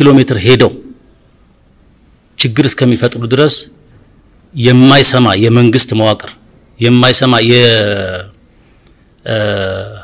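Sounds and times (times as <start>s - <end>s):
man speaking: 0.0s - 1.0s, 2.4s - 3.8s, 4.6s - 8.4s, 9.2s - 10.0s.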